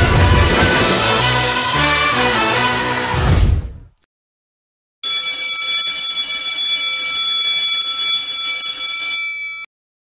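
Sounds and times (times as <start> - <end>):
electric school bell ringing: 5.0 - 9.7.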